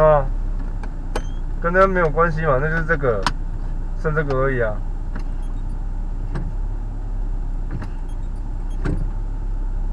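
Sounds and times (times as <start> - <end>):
car engine idling: 0.0 - 9.9.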